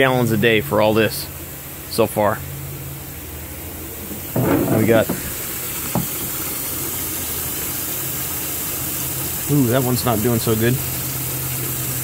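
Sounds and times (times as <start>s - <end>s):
water hissing in fish tank: 3.9s - 12.0s.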